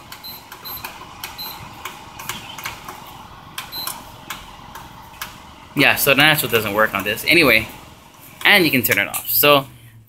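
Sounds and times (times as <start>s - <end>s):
cooler fan rushing: 0.0s - 9.8s.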